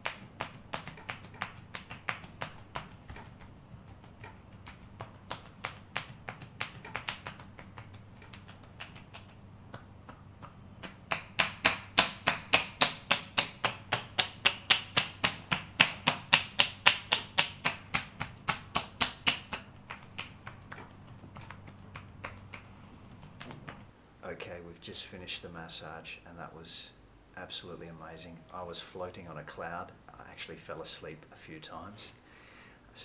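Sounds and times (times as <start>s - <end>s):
hands slapping bare skin: 0.0s - 23.9s.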